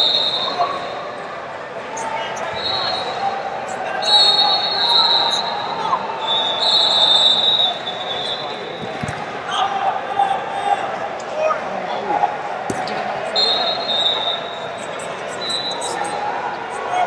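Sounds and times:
shrill whistle blasts: 0:00.0 - 0:01.0, 0:02.4 - 0:03.2, 0:03.9 - 0:08.8, 0:13.4 - 0:14.7, 0:15.4 - 0:16.1
many voices: 0:00.0 - 0:17.0.

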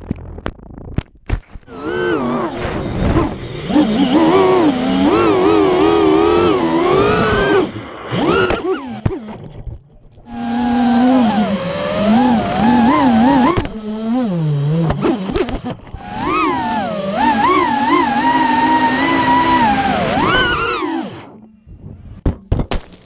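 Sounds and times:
quadcopter motors whining: 0:01.6 - 0:09.4, 0:10.2 - 0:21.5.

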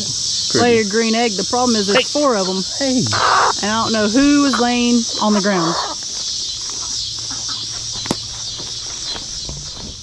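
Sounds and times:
high-pitched hiss: 0:00.0 - 0:05.1
chickens clucking faintly: 0:00.0 - 0:10.0.

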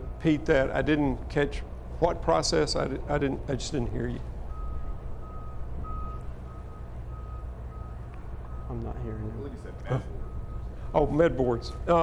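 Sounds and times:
low steady rumble: 0:00.0 - 0:12.0
reversing alarm beeping: 0:04.5 - 0:09.0, 0:09.9 - 0:12.0.

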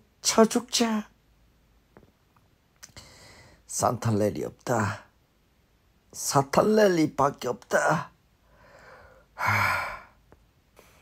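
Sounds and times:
man sighing heavily: 0:08.6 - 0:10.2.

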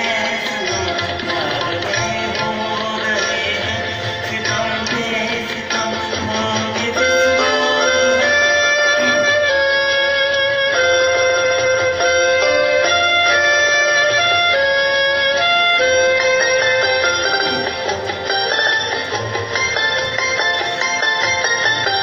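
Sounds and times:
instrumental karaoke backing track: 0:00.0 - 0:22.0.

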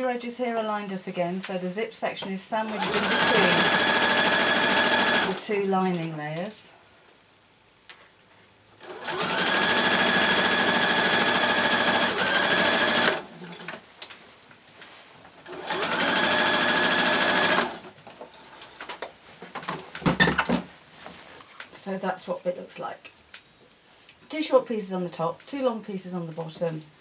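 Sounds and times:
sewing machine stitching: 0:02.7 - 0:05.4, 0:08.8 - 0:13.8, 0:15.4 - 0:17.9.

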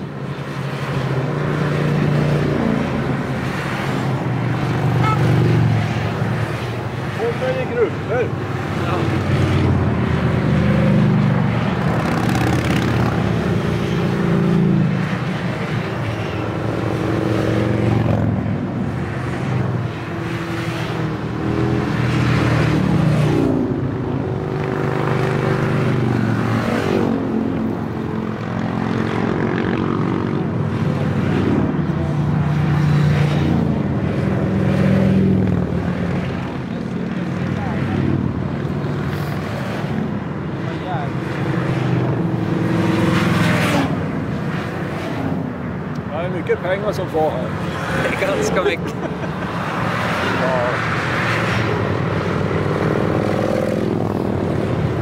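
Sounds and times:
motorcycles passing by: 0:00.0 - 0:55.0.

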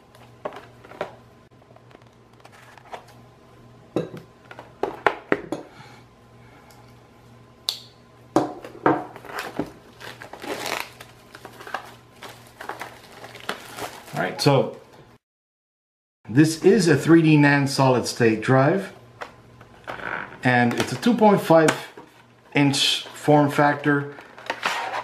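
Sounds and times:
plastic wrap crinkling: 0:09.2 - 0:14.6.

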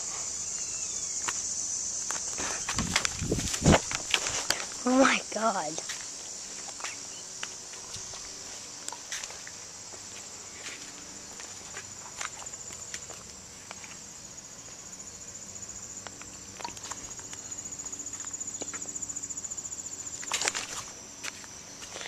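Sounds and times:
high-pitched insect trill: 0:00.0 - 0:22.0
footsteps on grass: 0:02.0 - 0:14.0.

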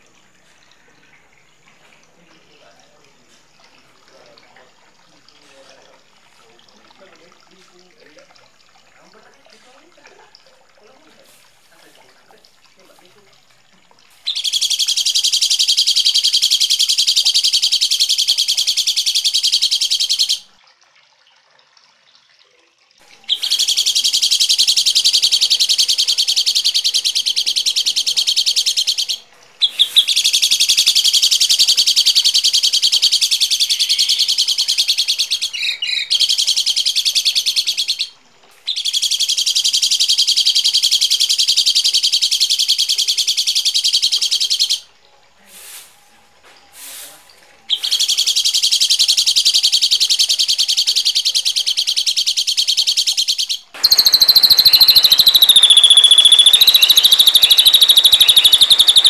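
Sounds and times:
songbird harsh chattering call: 0:14.2 - 0:20.5, 0:23.2 - 0:44.9, 0:47.7 - 0:59.0.

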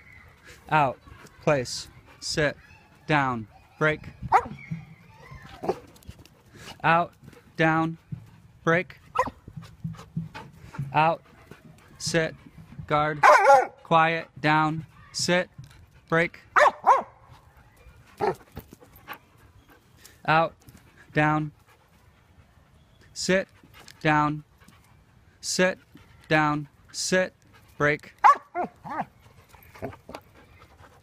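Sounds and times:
dog whining: 0:04.2 - 0:05.9
dog yelping: 0:04.3 - 0:05.9, 0:09.2 - 0:09.4, 0:16.6 - 0:17.1, 0:18.2 - 0:18.4, 0:28.2 - 0:30.7
dog barking: 0:09.2 - 0:09.4, 0:13.2 - 0:13.8, 0:16.6 - 0:17.2, 0:28.2 - 0:29.1.

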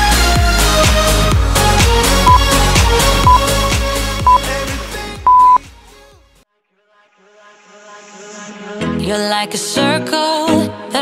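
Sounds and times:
interval timer beeps: 0:05.3 - 0:05.6.

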